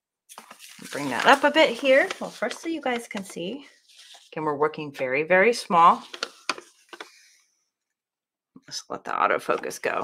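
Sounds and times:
paper rustling: 0:00.3 - 0:05.1, 0:05.7 - 0:07.3.

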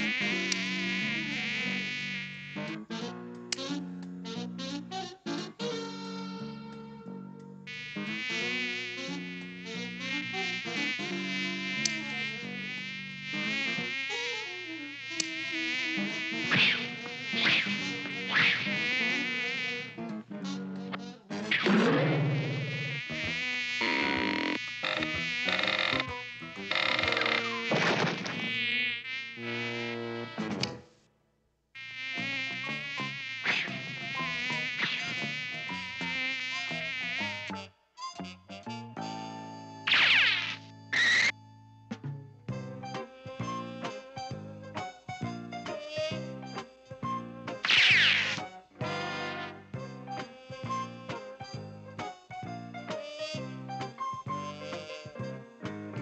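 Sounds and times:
cartoon housefly buzzing: 0:00.0 - 0:03.7, 0:07.7 - 0:20.1, 0:21.5 - 0:30.6, 0:31.8 - 0:37.6, 0:39.9 - 0:41.3, 0:47.6 - 0:48.5
sharp swatting whacks: 0:16.5 - 0:17.7, 0:39.9 - 0:40.6.

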